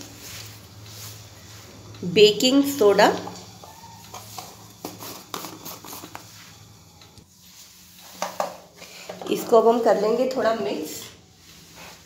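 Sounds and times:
clicks and knocks of kitchen things: 8.1 - 9.6.

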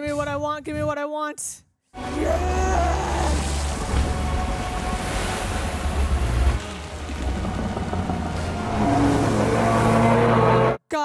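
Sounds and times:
churning water rushing: 2.0 - 10.8
dramatic music: 2.0 - 10.8
deep rumble: 2.3 - 10.8.

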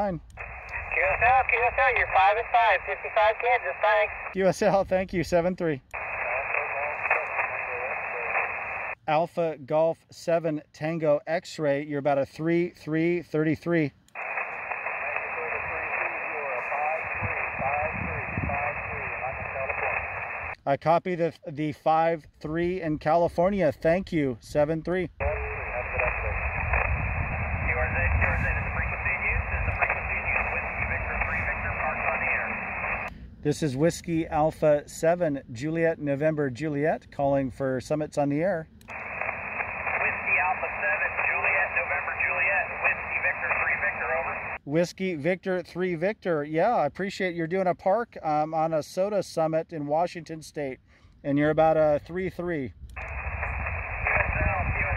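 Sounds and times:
faint radio voice: 0.0 - 4.4, 6.0 - 9.0, 14.2 - 20.6, 25.2 - 33.1, 38.9 - 44.6, 53.0 - 54.9
radio static hiss: 0.0 - 4.7, 5.9 - 9.0, 14.2 - 20.6, 25.2 - 33.6, 38.9 - 44.6, 53.0 - 54.9.

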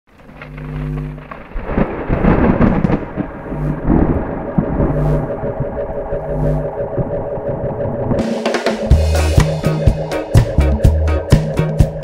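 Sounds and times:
thunder crash and rumble: 1.2 - 8.2
repeated low note: 1.9 - 12.0
held chord: 8.2 - 12.0.

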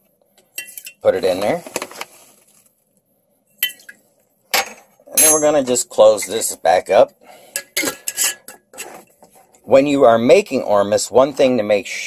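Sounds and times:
kitchen containers clinking: 0.5 - 2.0, 3.6 - 6.4, 7.6 - 9.1.

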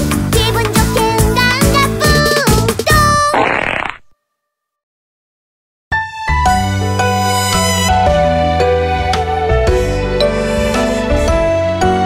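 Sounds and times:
comic sound effect: 3.3 - 4.1.

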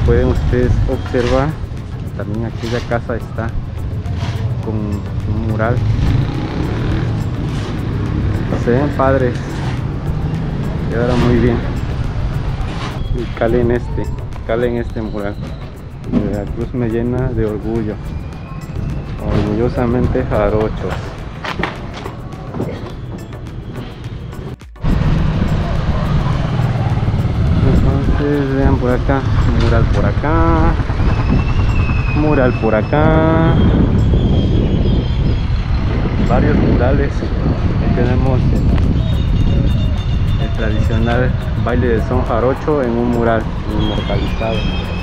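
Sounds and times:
music playing: 0.0 - 34.9, 36.0 - 45.0
vehicle engine rumbling: 0.0 - 45.0
motorcycle riding past: 5.8 - 13.1, 24.8 - 32.2.

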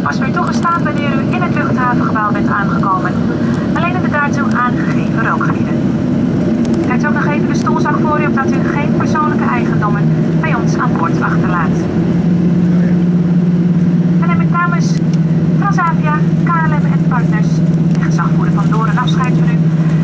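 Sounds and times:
cabin announcement: 0.0 - 20.0
humming tone: 0.0 - 20.0
jet engines droning in cabin: 0.0 - 20.0.

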